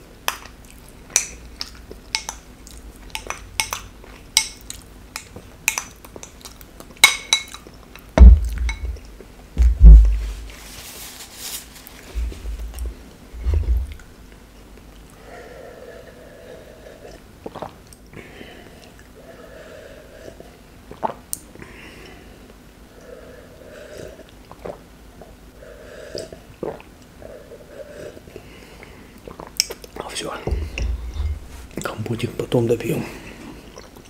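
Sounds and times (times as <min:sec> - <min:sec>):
person gulping and swallowing: 0:07.4 - 0:10.2, 0:17.1 - 0:18.1, 0:20.9 - 0:21.5, 0:24.2 - 0:25.4, 0:26.2 - 0:27.1, 0:29.2 - 0:31.9, 0:33.6 - 0:34.0.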